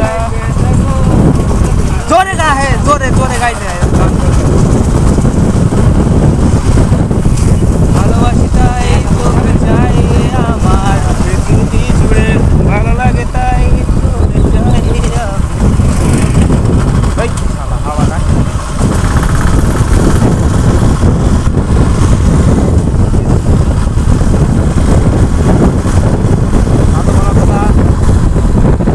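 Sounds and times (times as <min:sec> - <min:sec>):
motorcycle engine running: 0:00.0 - 0:28.9
wind buffeting microphone: 0:00.0 - 0:28.9.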